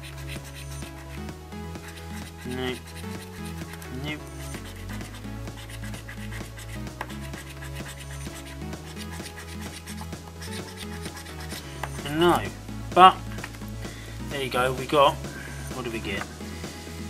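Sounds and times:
coin scratching scratchcard: 0.0s - 1.1s, 1.7s - 12.0s
background music with bass line: 0.0s - 17.0s.

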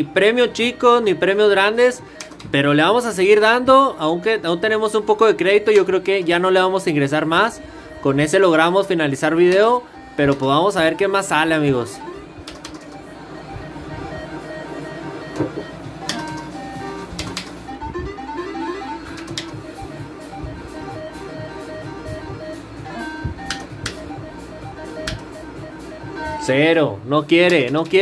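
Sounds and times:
slot machine game music: 0.0s - 26.9s
sharp clicks: 2.2s - 2.6s, 10.3s - 10.5s, 12.4s - 13.0s, 15.4s - 16.5s, 17.1s - 17.6s, 19.1s - 19.6s, 23.4s - 24.0s, 25.0s - 25.4s, 27.4s - 28.0s.

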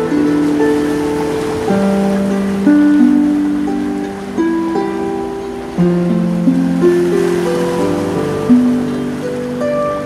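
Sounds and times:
harp playing slow melody: 0.0s - 10.0s
ocean surf hiss: 0.0s - 10.0s.

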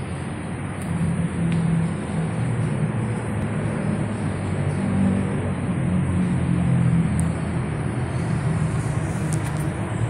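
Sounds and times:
low wavering hum: 0.0s - 10.0s
road traffic rumble: 0.0s - 10.0s.

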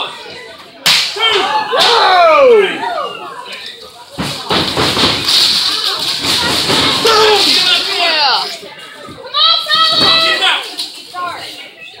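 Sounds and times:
crowd shouting: 1.1s - 3.5s.

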